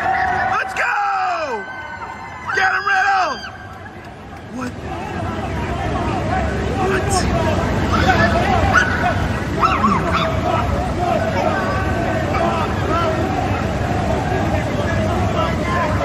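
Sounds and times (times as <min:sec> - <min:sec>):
babble of voices: 0:03.4 - 0:16.0
men shouting: 0:04.5 - 0:16.0.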